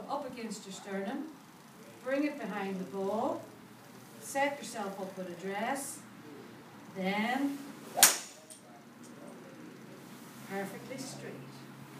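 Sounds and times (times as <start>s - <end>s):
golf club striking ball: 8.0s - 8.6s.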